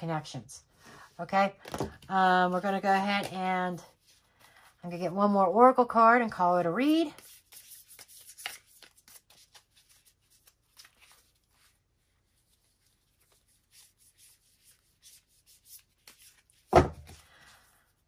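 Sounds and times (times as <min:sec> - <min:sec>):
cards shuffling by hand: 0:01.5 - 0:04.8, 0:06.8 - 0:18.0.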